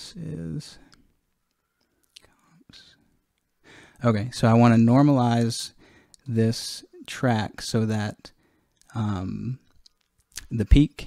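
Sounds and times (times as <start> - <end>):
man's intake of breath: 3.6 - 4.0, 5.8 - 6.2.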